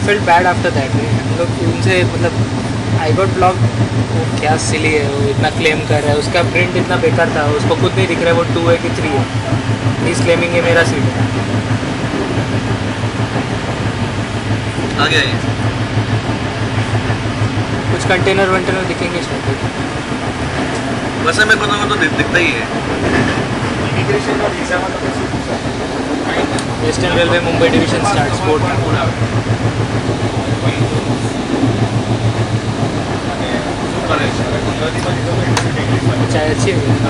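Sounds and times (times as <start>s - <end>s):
low throbbing hum: 0.0s - 37.0s
train low rumble: 0.0s - 37.0s.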